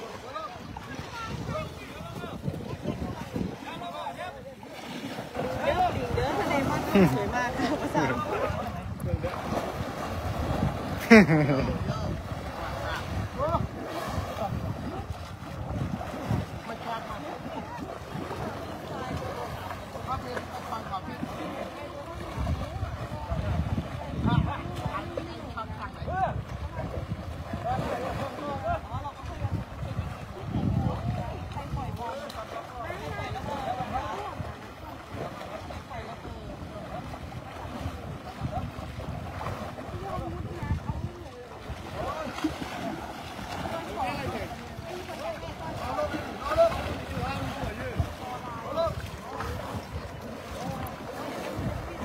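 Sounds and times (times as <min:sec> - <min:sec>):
faint voices: 0:00.0 - 0:52.0
water churning and splashing: 0:00.0 - 0:52.0
wind on microphone: 0:00.0 - 0:52.0.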